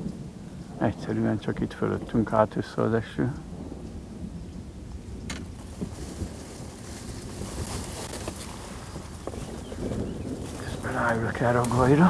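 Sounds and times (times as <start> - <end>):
light rain hissing: 0.0 - 12.0
wind buffeting microphone: 0.0 - 12.0.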